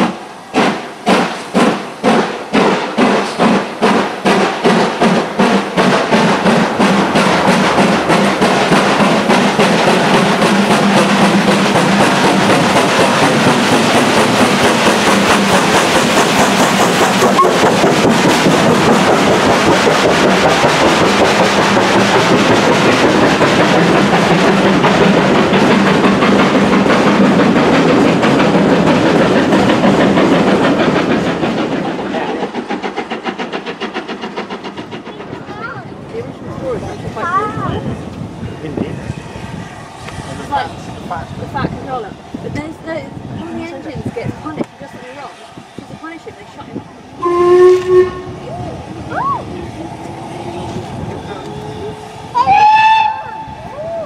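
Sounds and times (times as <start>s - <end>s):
train wheels clattering: 0.0s - 48.4s
steam locomotive passing: 0.0s - 54.0s.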